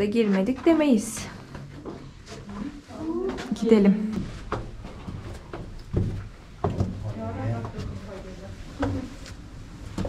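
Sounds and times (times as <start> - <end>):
footsteps on brick stairs: 0.0 - 7.0.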